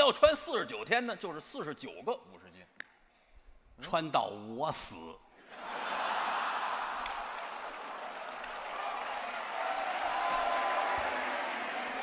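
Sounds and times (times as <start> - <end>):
audience laughing and applauding: 5.4 - 12.0.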